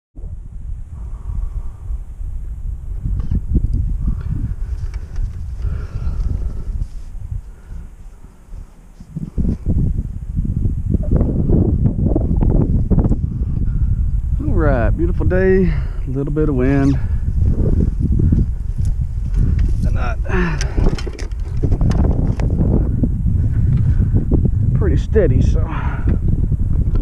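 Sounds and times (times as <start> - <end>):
wind buffeting microphone: 0.2 - 27.0.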